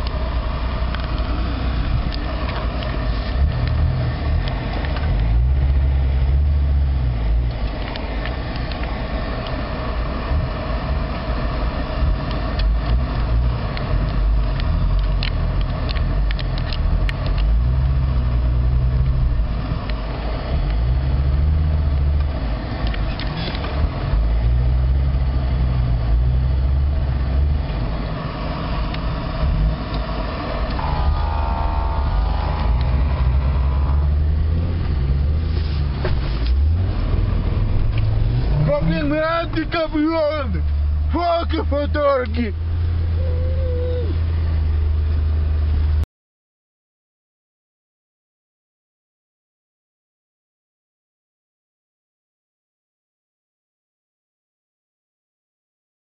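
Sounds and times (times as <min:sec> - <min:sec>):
off-road vehicle engine revving: 0:00.0 - 0:46.0.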